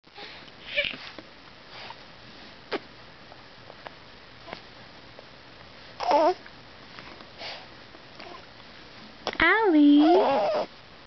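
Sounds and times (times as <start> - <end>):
baby snuffly breathing: 7.4 - 7.7.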